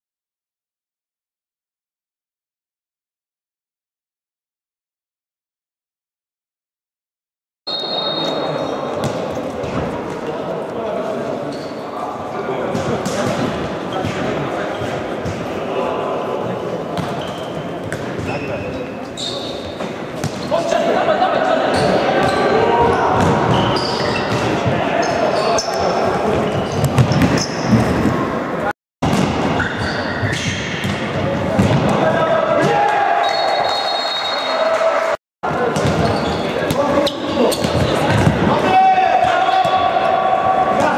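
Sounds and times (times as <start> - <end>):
ball kicked and bouncing: 37.6 - 38.5.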